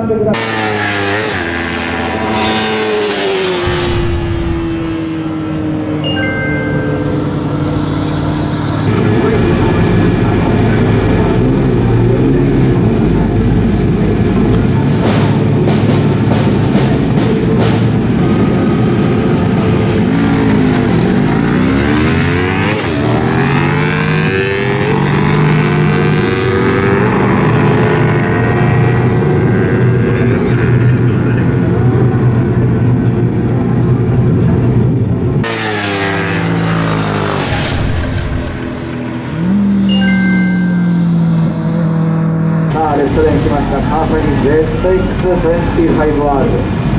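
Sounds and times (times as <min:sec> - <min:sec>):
motorcycles revving and accelerating: 0:00.0 - 0:46.9.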